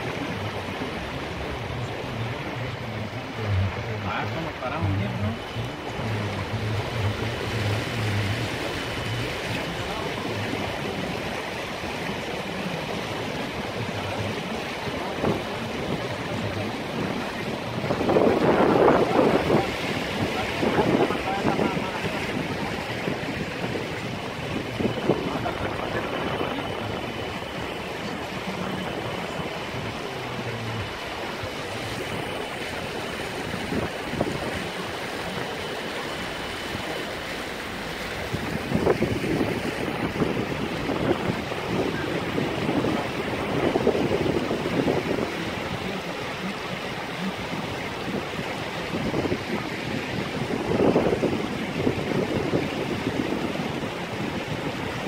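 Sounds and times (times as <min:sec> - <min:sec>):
low engine hum: 0:00.0 - 0:55.0
water sloshing against truck: 0:00.0 - 0:55.0.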